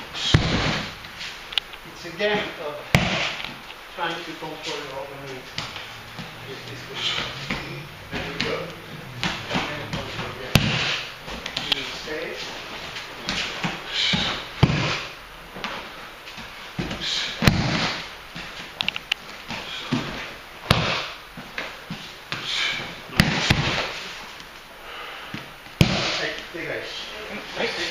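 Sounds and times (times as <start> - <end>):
body slapping onto padded mat: 0.2 - 0.9, 2.9 - 3.5, 5.5 - 6.3, 9.2 - 11.7, 13.2 - 18.7, 19.4 - 22.4, 23.1 - 24.0, 25.3 - 26.4.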